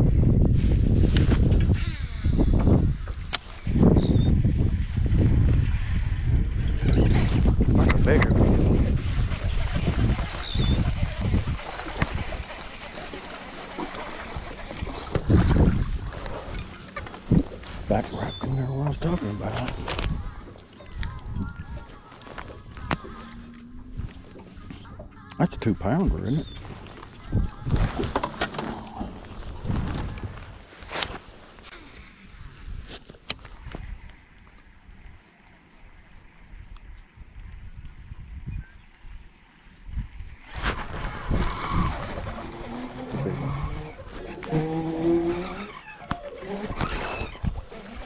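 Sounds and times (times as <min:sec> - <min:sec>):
wind buffeting microphone: 0:00.0 - 0:12.9, 0:14.2 - 0:30.7, 0:35.9 - 0:45.9.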